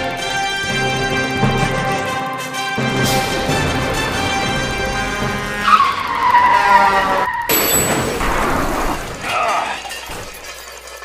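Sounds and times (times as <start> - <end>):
music: 0.0 - 7.8
noisy burst: 2.5 - 9.3
car tyre screech: 3.1 - 10.0.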